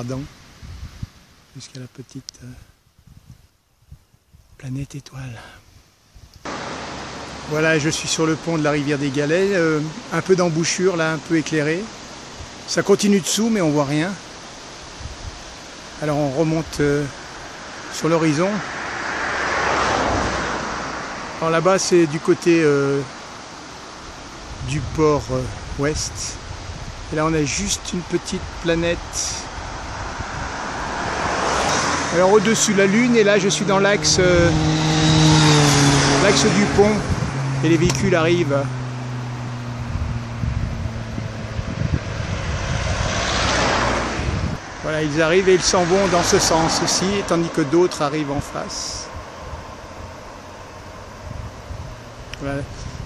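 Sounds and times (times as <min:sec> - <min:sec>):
approaching car tyre and engine noise: 0:06.4 - 0:53.0
car engine hum: 0:06.5 - 0:10.2, 0:16.8 - 0:21.7, 0:29.5 - 0:53.0
road vehicle passing by: 0:06.5 - 0:10.3, 0:14.3 - 0:24.6, 0:29.4 - 0:53.0.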